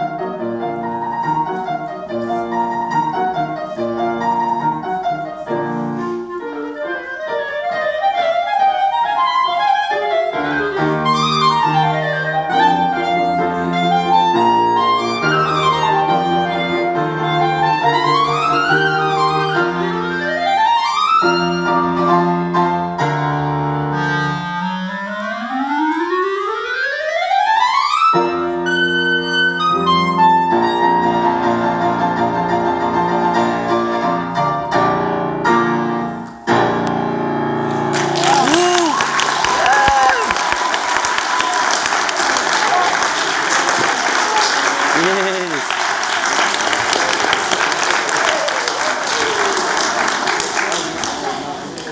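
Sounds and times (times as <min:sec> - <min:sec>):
piano chords: 0:00.0 - 0:51.9
clarinet playing fast scales: 0:00.6 - 0:22.4, 0:23.8 - 0:31.8.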